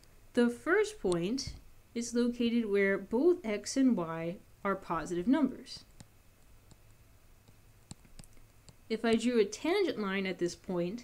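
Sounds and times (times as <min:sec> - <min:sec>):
stylus tapping drawing tablet: 0:05.9 - 0:09.3.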